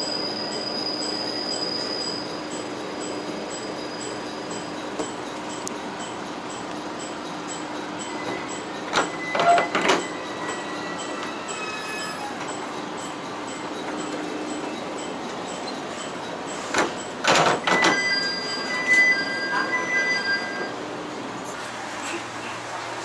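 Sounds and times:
wheel and brake squeal: 0.0s - 5.2s, 8.0s - 13.1s, 14.0s - 20.8s
railcar rolling over jointed track: 0.1s - 20.7s.

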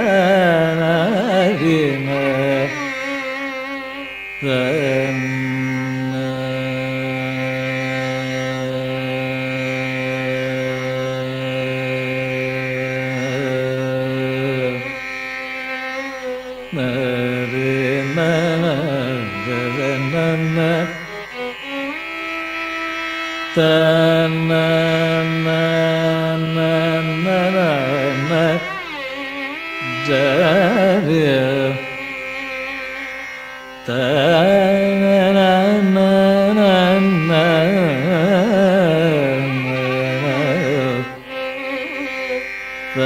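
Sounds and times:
man singing long low note: 0.0s - 3.2s, 4.4s - 15.0s, 16.7s - 21.4s, 23.5s - 29.0s, 29.8s - 32.2s, 33.8s - 42.2s.

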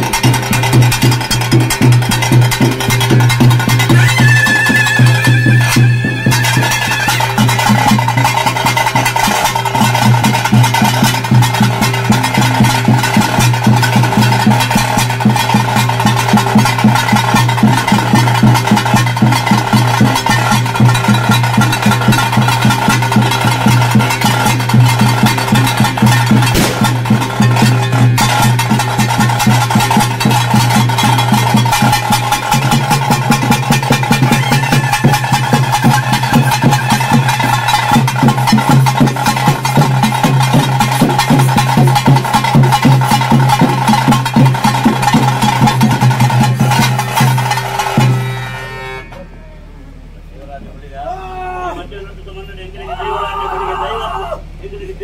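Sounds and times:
fast dense drumming: 0.0s - 48.4s
held pipe drone: 0.0s - 50.3s.

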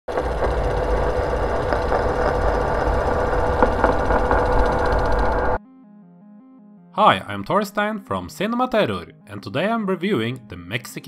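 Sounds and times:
machine rattling and rumbling: 0.0s - 5.6s.

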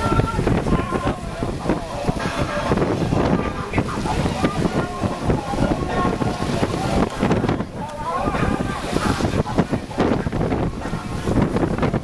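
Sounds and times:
water splashing along hull: 0.0s - 12.0s
wind buffeting microphone: 0.0s - 12.0s.

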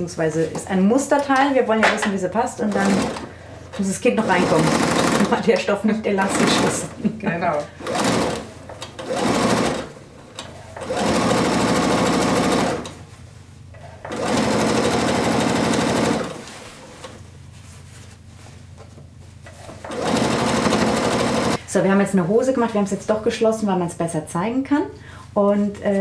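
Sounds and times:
sewing machine stitching: 2.5s - 7.0s, 7.8s - 13.0s, 13.8s - 17.2s, 19.6s - 21.6s.

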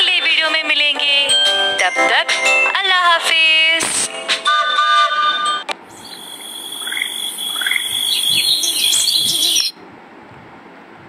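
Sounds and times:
high steady hiss and whine: 5.8s - 9.8s
cartoon bird chirps: 5.9s - 9.8s.

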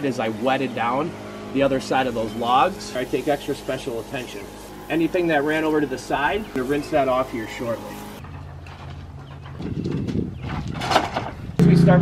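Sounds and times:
small motor humming: 0.0s - 8.2s.

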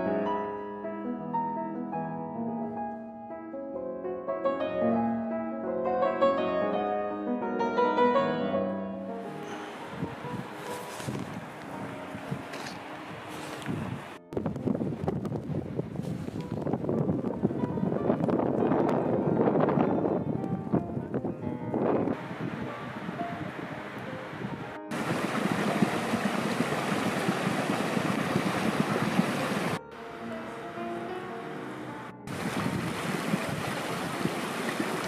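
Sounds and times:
rushing outdoor noise: 9.3s - 18.6s, 21.8s - 29.8s, 32.3s - 35.0s
faint background music: 29.8s - 32.3s.

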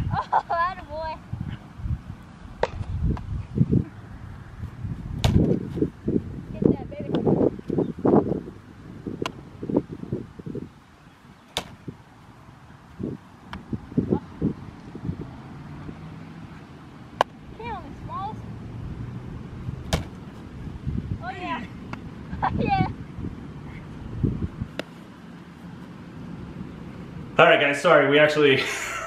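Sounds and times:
baseball hitting leather glove: 2.6s - 3.3s, 5.2s - 5.6s, 9.2s - 9.4s, 11.5s - 11.8s, 17.2s - 17.4s, 19.8s - 20.2s, 24.7s - 25.0s
baseball smacking into net: 2.6s - 3.3s, 5.2s - 5.6s, 11.5s - 11.8s, 19.9s - 20.2s.

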